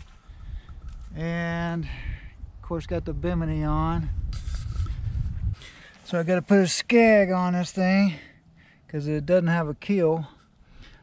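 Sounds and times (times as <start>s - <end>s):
wind buffeting microphone: 0.0s - 5.9s.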